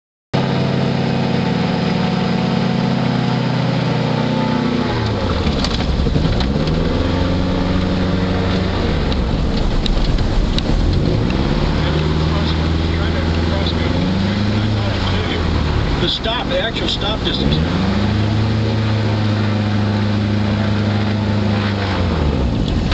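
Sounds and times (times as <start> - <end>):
aircraft engine and propeller: 0.4 - 22.9.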